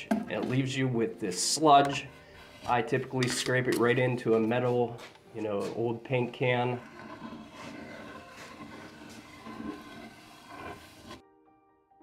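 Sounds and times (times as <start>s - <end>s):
putty knife scraping paint sludge: 5.7s - 11.2s.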